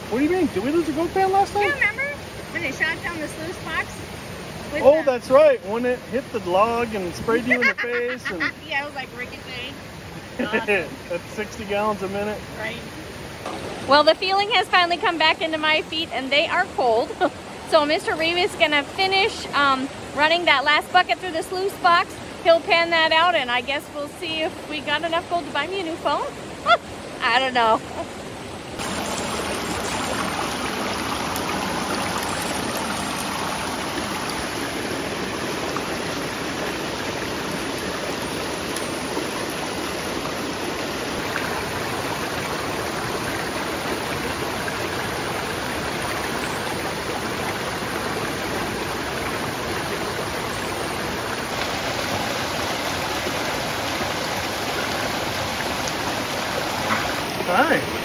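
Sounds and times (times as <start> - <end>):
creek rushing over stones: 0.0 - 58.0.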